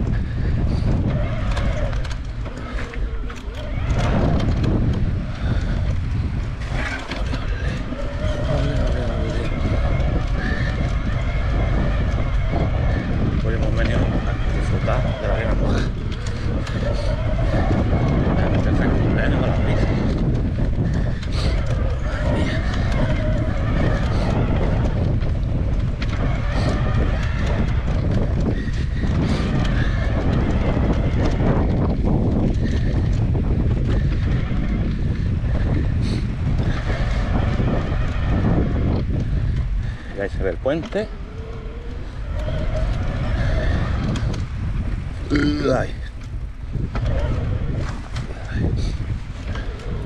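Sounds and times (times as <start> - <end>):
bike tyre rumble: 0.0 - 50.0
wind buffeting microphone: 0.0 - 50.0.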